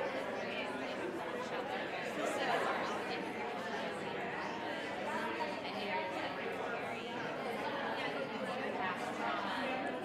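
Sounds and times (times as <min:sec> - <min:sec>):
hubbub of conversations: 0:00.0 - 0:10.0.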